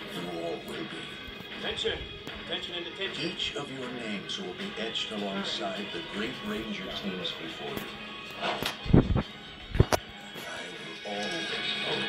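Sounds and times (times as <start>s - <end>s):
film dialogue: 0.0s - 12.0s
film soundtrack music: 0.0s - 12.0s
loud thumps: 8.8s - 10.0s.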